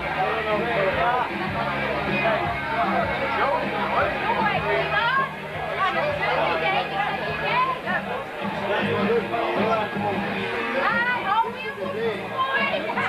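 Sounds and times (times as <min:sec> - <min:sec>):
background music: 0:00.0 - 0:13.0
crowd of voices talking: 0:00.0 - 0:13.0.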